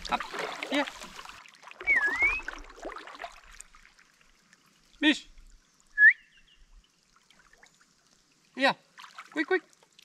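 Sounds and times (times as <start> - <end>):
paddles dipping in water: 0.0 - 5.9, 6.9 - 10.0
whistle dipping and rising: 1.8 - 2.8, 5.9 - 6.7.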